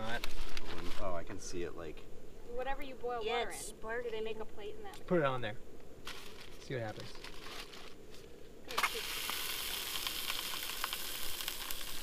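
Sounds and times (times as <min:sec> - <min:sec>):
aluminium foil crinkling: 0:00.0 - 0:01.2, 0:06.1 - 0:12.0
food sizzling on hot plate: 0:08.7 - 0:12.0.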